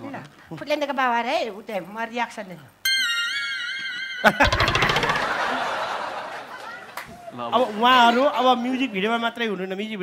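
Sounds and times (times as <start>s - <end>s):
high wavering squeal: 2.9s - 5.5s
sharp knock and rattle: 4.4s - 5.5s
audience laughter: 4.4s - 7.0s.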